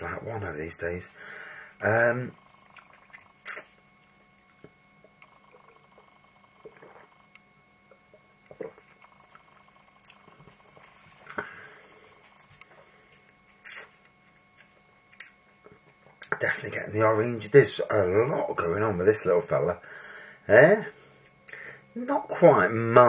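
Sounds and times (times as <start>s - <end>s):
lip smacks and tongue clicks: 2.7s - 3.7s, 12.4s - 15.4s.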